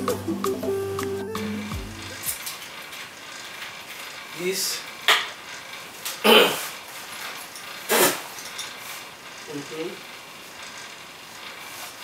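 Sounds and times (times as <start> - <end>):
person coughing: 6.2 - 6.7.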